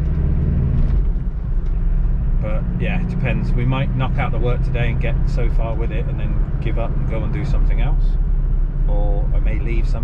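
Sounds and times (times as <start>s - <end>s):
car engine drone inside cabin: 0.0s - 10.0s
road noise: 0.0s - 10.0s.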